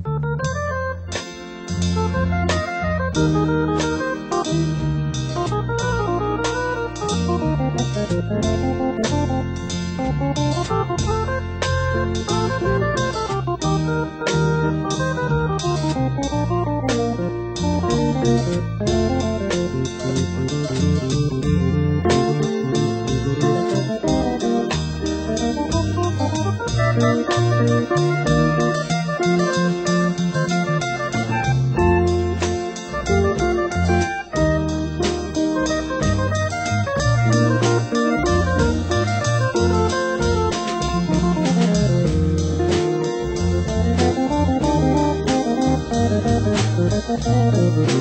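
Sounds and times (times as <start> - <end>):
rock music with guitar and organ: 0.4 - 48.0.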